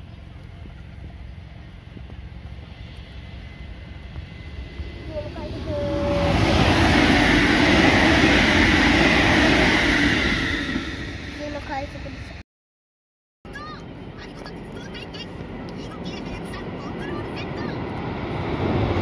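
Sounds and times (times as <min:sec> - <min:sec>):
electric train passing: 0:00.0 - 0:12.4, 0:13.5 - 0:19.0.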